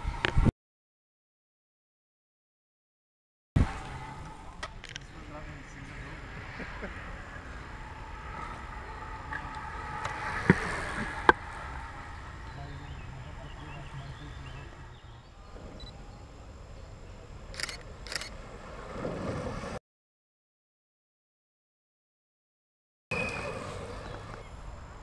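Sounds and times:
faint distant voices: 0:03.6 - 0:18.2
sharp loud clicks: 0:17.5 - 0:18.3.

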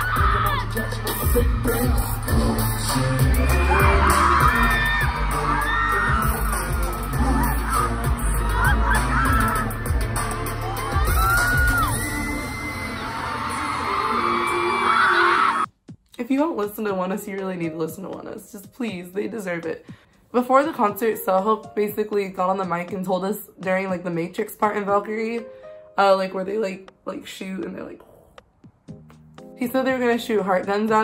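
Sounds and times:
crowd noise: 0:00.0 - 0:15.2
live pop music with singing: 0:00.0 - 0:15.6.

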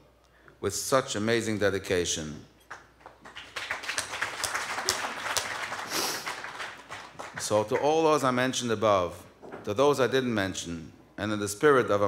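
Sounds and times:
audience applauding: 0:02.7 - 0:08.1.

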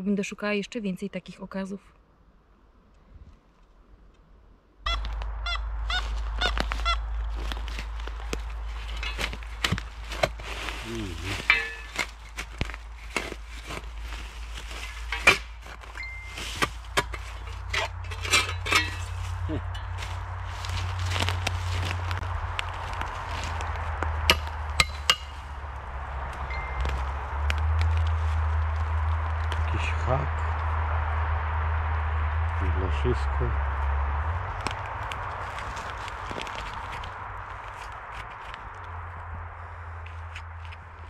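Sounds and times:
steady low rumble: 0:03.8 - 0:41.0
earth crumbled by hand: 0:06.0 - 0:29.8, 0:34.6 - 0:38.8
spade digging in soil: 0:08.7 - 0:20.0.

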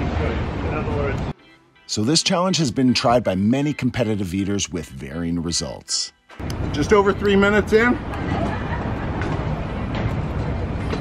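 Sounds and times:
traffic rumble: 0:06.4 - 0:11.0.

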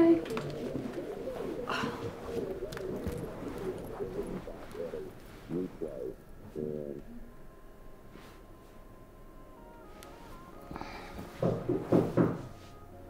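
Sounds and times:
bird calling: 0:00.0 - 0:07.4.

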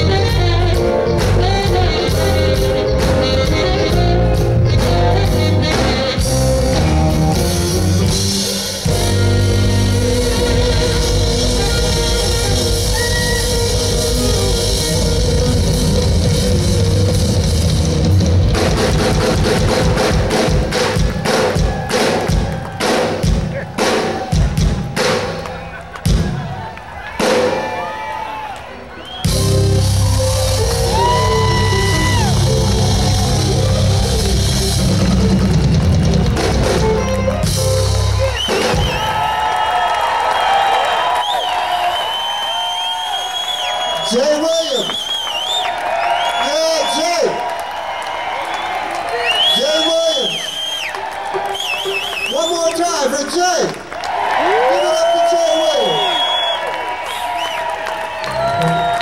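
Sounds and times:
alto saxophone: 0:00.0 - 0:20.7, 0:29.2 - 0:39.0
jazz-funk band playing: 0:00.0 - 0:27.9, 0:28.8 - 0:39.7
ensemble hits and drum strokes: 0:02.1 - 0:27.8, 0:29.2 - 0:39.4.

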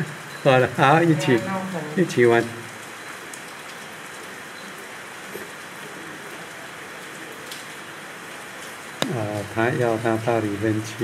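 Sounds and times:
steady rain hiss: 0:00.0 - 0:11.0
raindrop ticks: 0:02.4 - 0:05.6, 0:06.3 - 0:07.8.

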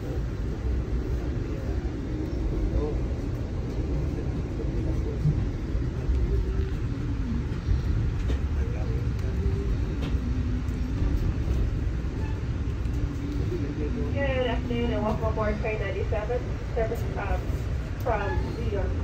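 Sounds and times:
train rumbling from inside: 0:00.0 - 0:19.0.

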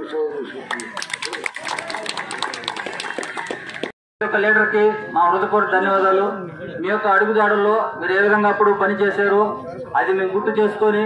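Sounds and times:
small group clapping: 0:00.6 - 0:04.0.

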